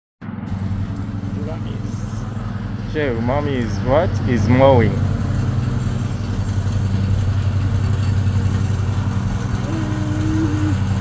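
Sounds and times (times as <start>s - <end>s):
lawn mower engine running: 0.5s - 11.0s.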